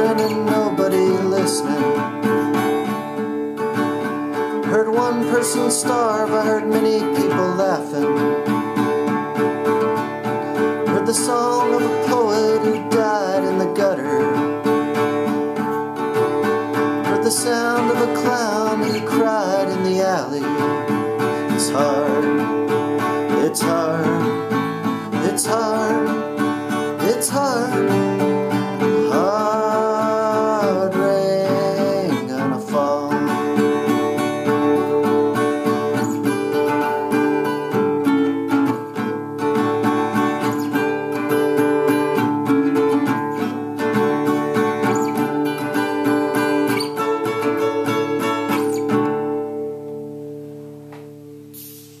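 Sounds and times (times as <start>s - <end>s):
acoustic guitar strumming: 0.0s - 52.0s
person singing held note: 51.5s - 52.0s.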